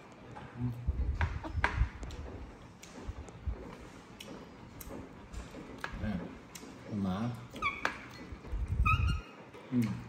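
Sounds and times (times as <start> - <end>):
baby monkey squeaking: 7.5 - 9.4.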